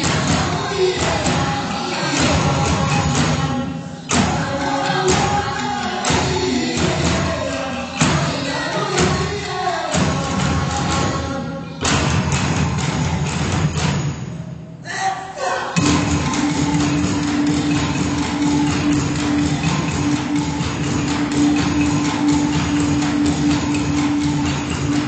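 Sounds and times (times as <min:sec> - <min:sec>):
thudding percussion: 0:00.0 - 0:14.7, 0:15.8 - 0:25.0.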